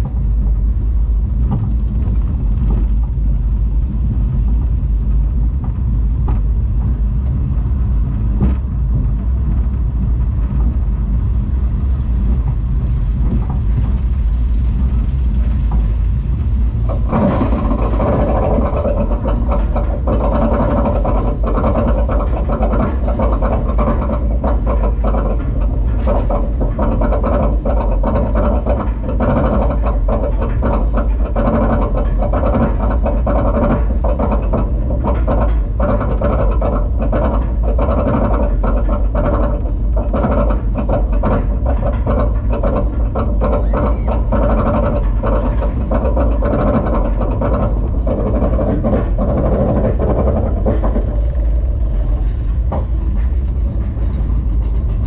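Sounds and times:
lift chain rumbling and clanking: 0.0s - 55.0s.

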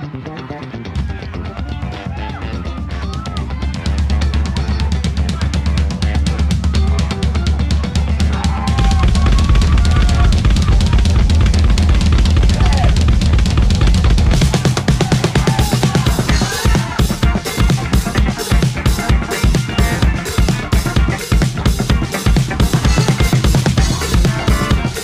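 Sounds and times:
band playing: 0.0s - 25.0s
drum kit groove: 1.0s - 25.0s.

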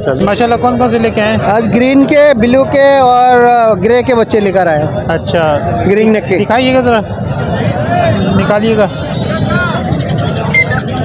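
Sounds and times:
constant market noise: 0.0s - 11.0s.

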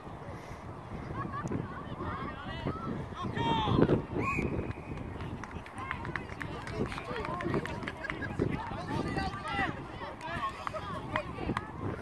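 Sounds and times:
whistle blast: 4.2s - 4.9s.

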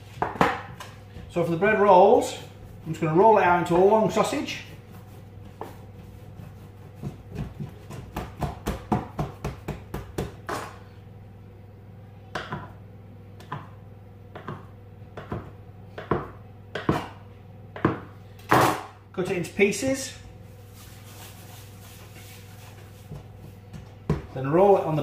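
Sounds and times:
dough knocking on worktop: 0.1s - 0.9s, 5.4s - 10.8s, 13.4s - 17.1s, 17.8s - 18.9s, 23.0s - 24.4s
knife cutting dough on worktop: 3.8s - 10.9s.

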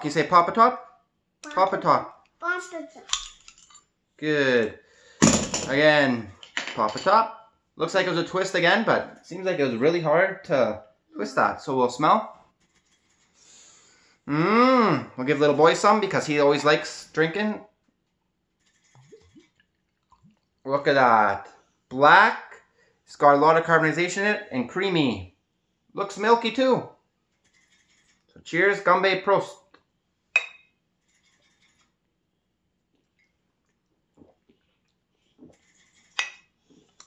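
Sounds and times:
glass bottle clinking glass mug: 30.4s - 30.7s.

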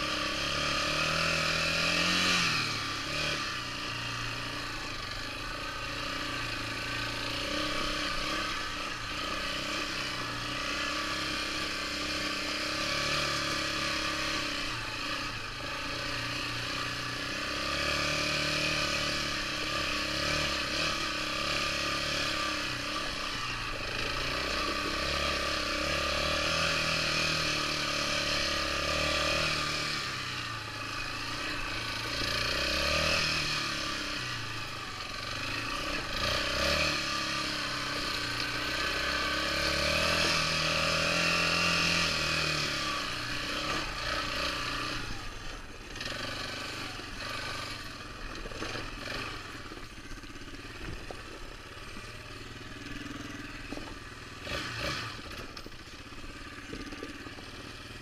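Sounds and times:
atv engine revving: 0.0s - 58.0s.

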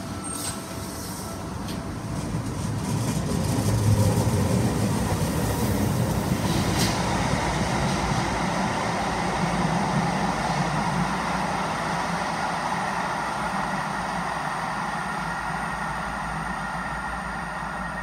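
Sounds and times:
electric train running in tunnel: 0.0s - 18.0s.

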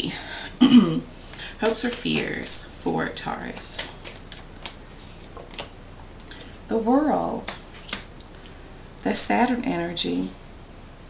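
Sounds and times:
cards flicking: 3.6s - 5.7s, 7.4s - 8.4s.

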